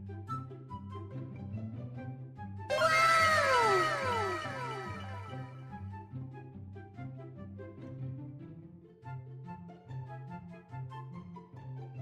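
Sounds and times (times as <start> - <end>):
cat meowing with echoes: 2.7 - 5.7
background music: 2.7 - 11.5.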